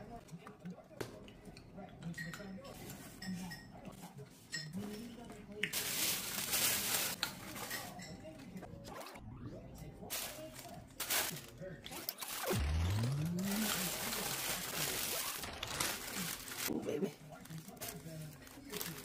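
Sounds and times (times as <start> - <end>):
tissue paper and plastic rustling: 5.7 - 8.1, 10.1 - 19.0.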